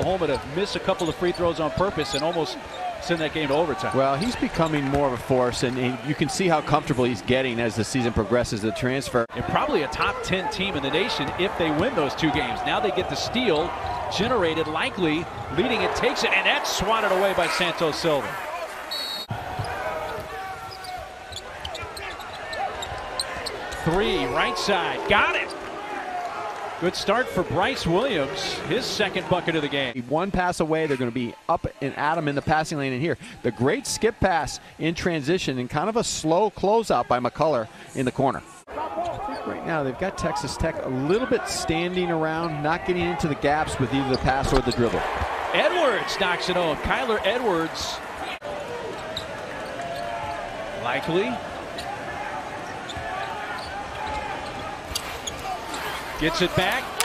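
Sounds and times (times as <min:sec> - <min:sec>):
sneakers squeaking: 0:00.0 - 0:03.0, 0:11.2 - 0:18.0, 0:18.6 - 0:26.3, 0:38.9 - 0:39.6, 0:47.6 - 0:50.1, 0:51.7 - 0:57.0
players calling out: 0:00.0 - 0:30.0, 0:38.7 - 0:57.0.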